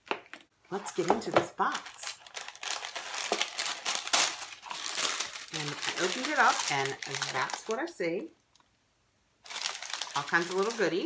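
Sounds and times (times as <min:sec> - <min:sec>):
packaging rustling and crinkling: 0:00.0 - 0:07.8, 0:09.4 - 0:11.0.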